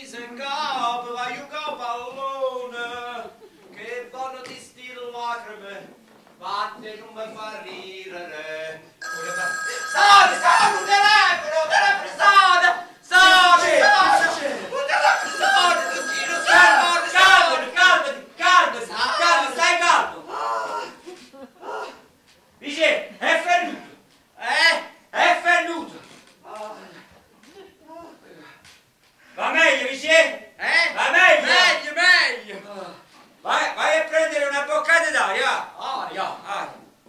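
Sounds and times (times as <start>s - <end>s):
telephone ringing: 9.0s - 11.8s, 14.8s - 17.8s
loud voice: 9.5s - 21.0s.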